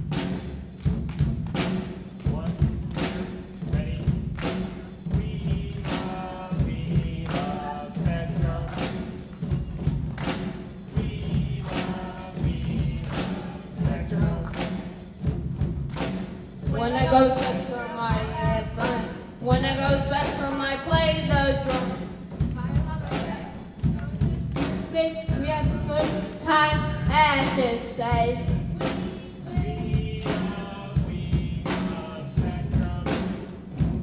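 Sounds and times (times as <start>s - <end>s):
hand drums and drum kit: 0.0s - 34.0s
group of voices singing: 2.2s - 15.1s, 16.7s - 33.9s.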